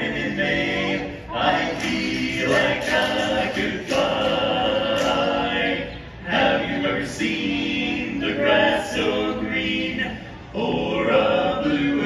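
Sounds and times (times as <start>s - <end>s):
men singing in close harmony: 0.0s - 12.0s.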